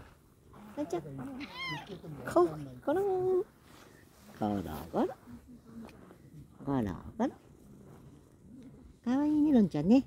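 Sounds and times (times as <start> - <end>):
cat meowing: 1.4 - 2.0.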